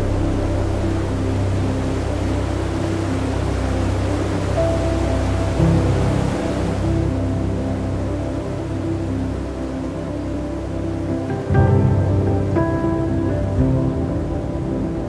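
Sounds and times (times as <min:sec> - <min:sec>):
ambient drone music: 0:00.0 - 0:15.0.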